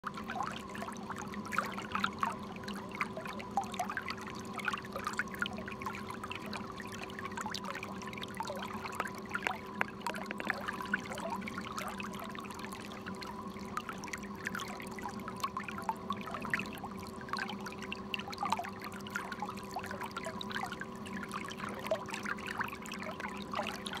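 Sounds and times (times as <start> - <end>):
water gurgling and splashing: 0.0 - 24.0
boat motor hum: 8.0 - 13.5.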